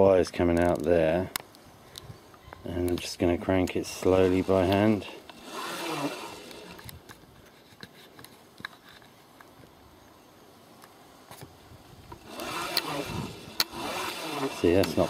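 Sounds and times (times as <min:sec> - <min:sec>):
motor scraping and rubbing: 0:03.8 - 0:07.6, 0:12.1 - 0:15.0.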